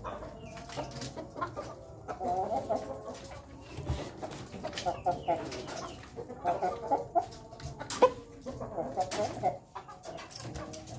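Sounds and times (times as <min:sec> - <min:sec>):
rooster clucking: 0:00.0 - 0:10.9.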